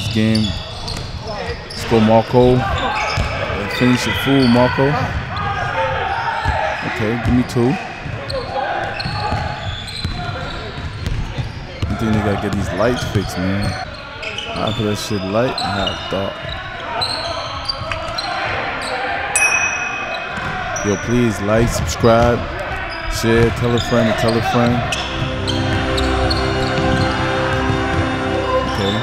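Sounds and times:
sneaker squeak: 0:00.0 - 0:12.0, 0:12.9 - 0:21.2, 0:22.8 - 0:27.1.

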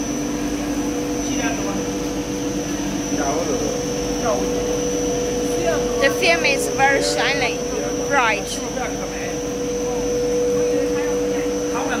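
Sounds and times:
machine drone with whining motors: 0:00.0 - 0:12.0.

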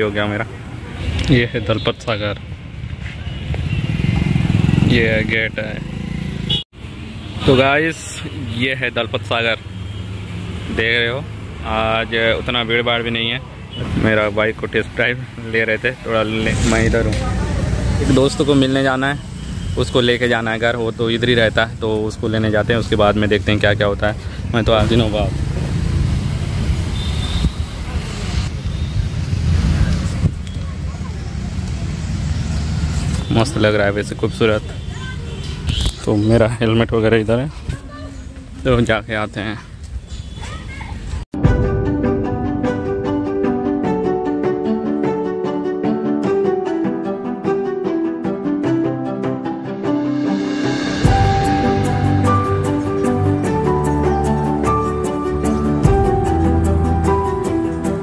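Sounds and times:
motorcycle engine running: 0:03.5 - 0:06.6.

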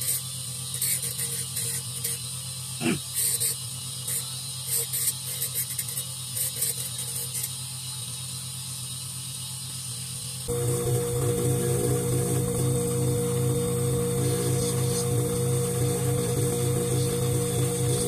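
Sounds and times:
electric motor hum: 0:10.5 - 0:18.0
polishing lathe running: 0:10.5 - 0:18.0.

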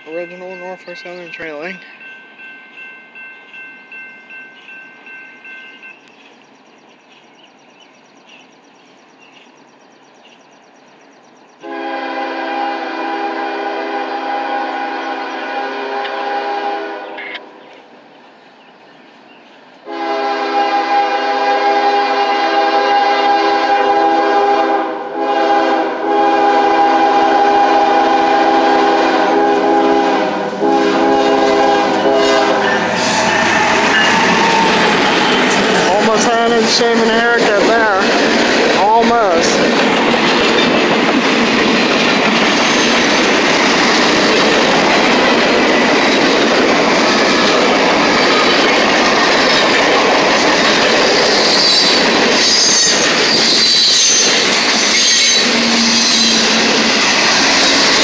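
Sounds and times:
locomotive air horn blasts: 0:11.6 - 0:17.5, 0:19.9 - 0:34.9
freight train wheels clattering: 0:27.1 - 0:58.0
locomotives passing close by: 0:27.4 - 0:58.0
high-pitched wheel squeal: 0:51.4 - 0:56.5.

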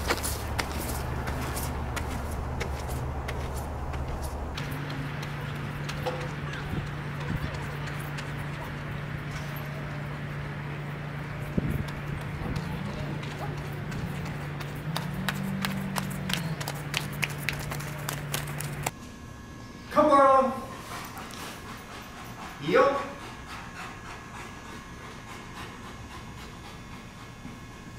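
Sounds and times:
footsteps on gravel: 0:00.0 - 0:06.8
steady low hum: 0:00.0 - 0:27.9.

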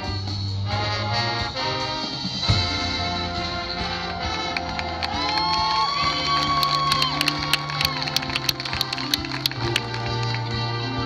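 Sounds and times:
marching band brass chords: 0:00.0 - 0:11.0
crowd cheering: 0:03.3 - 0:11.0.

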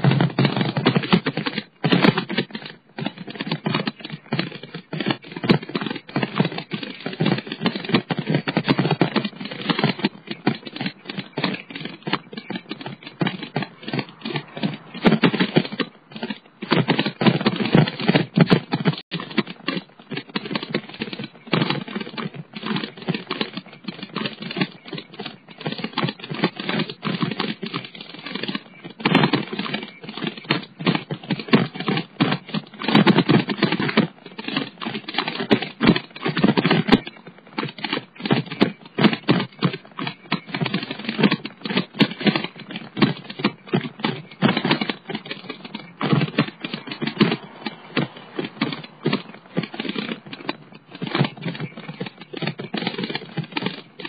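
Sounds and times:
bicycle rattling and clicking: 0:00.0 - 0:54.0.

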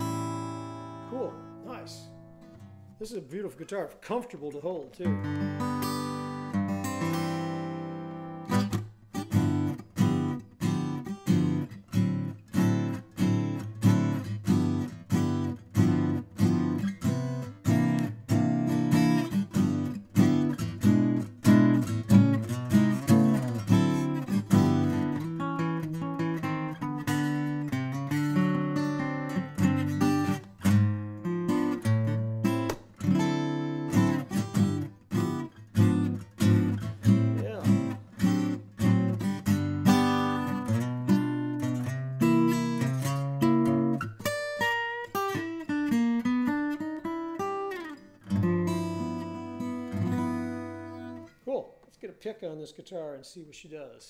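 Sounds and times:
acoustic guitar fingerstyle: 0:00.0 - 0:52.0.

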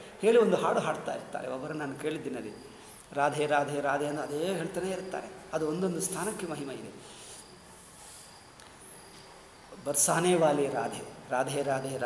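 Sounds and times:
insects chirping: 0:00.0 - 0:12.0
person speaking: 0:00.2 - 0:07.4, 0:09.8 - 0:12.0.

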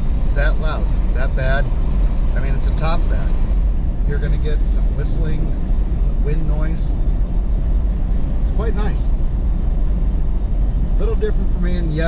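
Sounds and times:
wind noise in car cabin: 0:00.0 - 0:12.0.

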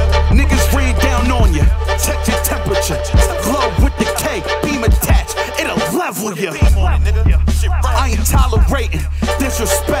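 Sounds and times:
deep bass hits: 0:00.0 - 0:05.4, 0:06.6 - 0:09.1
rapping over a beat: 0:00.0 - 0:10.0.

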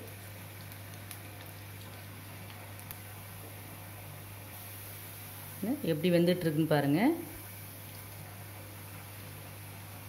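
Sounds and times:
dough sizzling in hot oil: 0:00.0 - 0:10.0.

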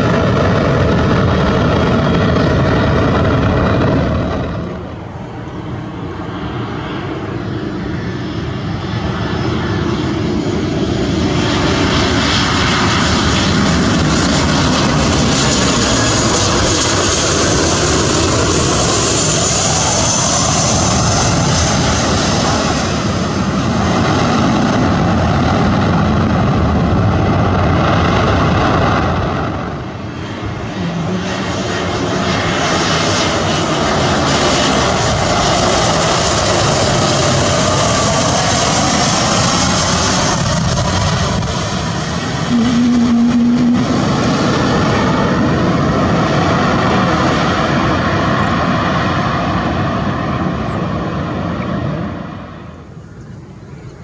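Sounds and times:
airliner engines roaring: 0:00.0 - 0:54.0
jet engine roar with whine: 0:00.0 - 0:54.0.

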